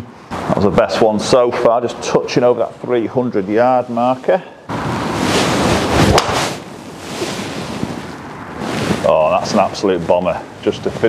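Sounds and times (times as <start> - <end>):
rushing noise: 4.7 - 9.4
golf driver striking ball: 6.1 - 6.4.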